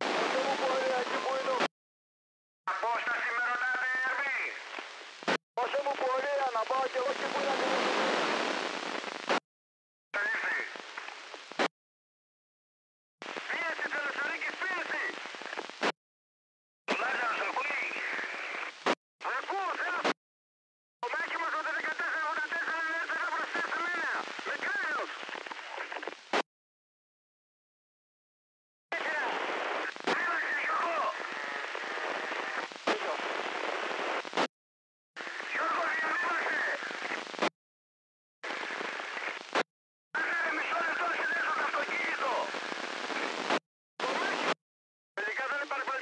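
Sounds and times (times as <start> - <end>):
garbled radio voice with hiss: 0.0 - 1.7, 2.7 - 4.7, 5.6 - 8.2, 10.2 - 10.9, 13.2 - 15.6, 16.9 - 20.2, 21.0 - 26.1, 28.9 - 34.2, 35.2 - 37.5, 40.2 - 44.6, 45.2 - 46.0.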